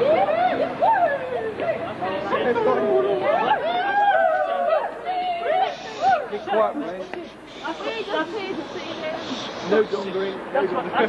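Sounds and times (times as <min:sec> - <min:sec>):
overlapping conversation: 0:00.0 - 0:11.0.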